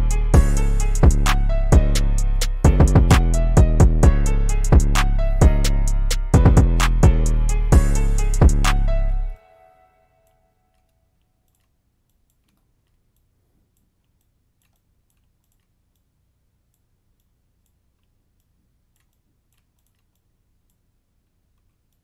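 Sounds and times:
trap beat with bass and drums: 0.0 - 9.4
computer mouse clicks: 10.7 - 16.1, 16.7 - 20.8.

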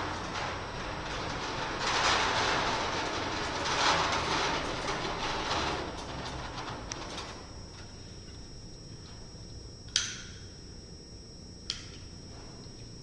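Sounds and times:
cart wheels rumbling: 0.0 - 7.6.

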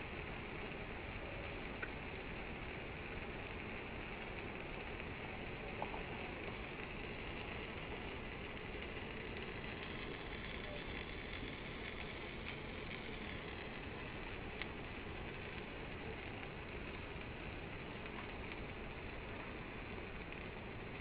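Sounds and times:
faint crackles: 0.0 - 21.0
pancake sizzling in oil: 0.0 - 21.0.

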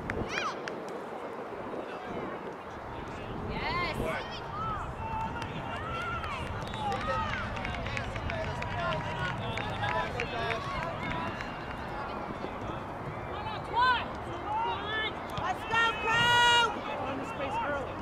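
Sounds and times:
voices shouting: 13.2 - 17.9.

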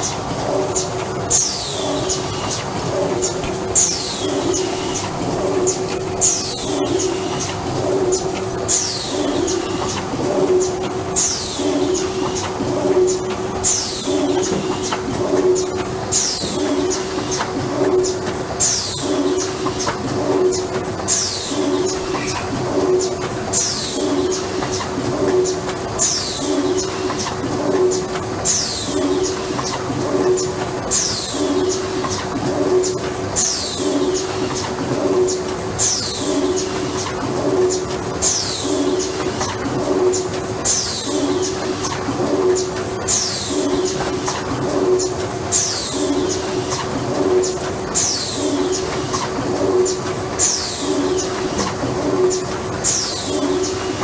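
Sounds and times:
pneumatic grippers clicking: 0.0 - 54.0
steady machine hum: 0.0 - 54.0.

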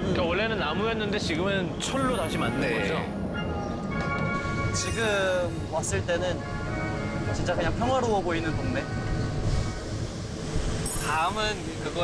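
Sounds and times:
train rumbling on track: 0.0 - 12.0.

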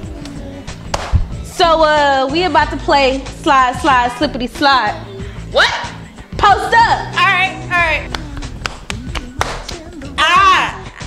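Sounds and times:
background music: 0.0 - 11.0
hand clapping game: 0.1 - 1.4, 8.0 - 10.7.

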